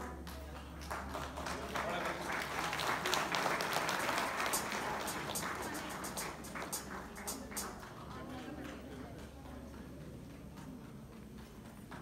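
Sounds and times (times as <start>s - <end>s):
faint talking voices: 0.0s - 12.0s
scattered hand claps: 0.0s - 12.0s.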